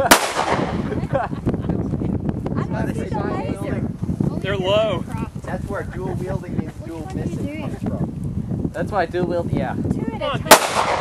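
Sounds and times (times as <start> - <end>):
pistol shot with echo: 0.0 - 0.8, 10.5 - 11.0.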